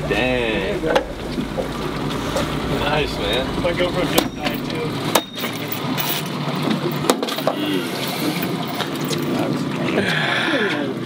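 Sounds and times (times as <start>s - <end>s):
wind noise on microphone: 0.0s - 5.4s
outboard motor humming: 0.0s - 10.5s.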